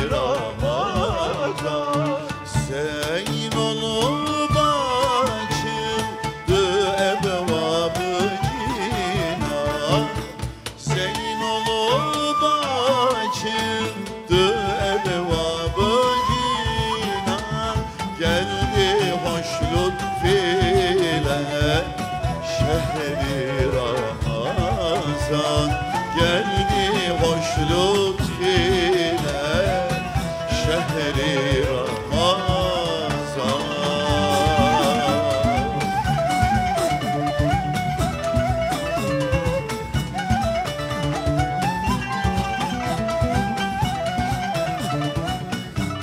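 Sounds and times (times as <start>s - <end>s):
low drum beat: 0.0s - 12.5s, 13.2s - 46.0s
man singing: 0.0s - 37.6s
plucked oud: 0.0s - 46.0s.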